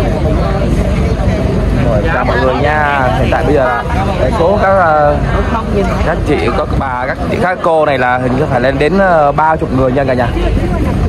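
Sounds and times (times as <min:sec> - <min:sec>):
crowd voices outdoors: 0:00.0 - 0:11.0
steady low rumble: 0:00.0 - 0:11.0.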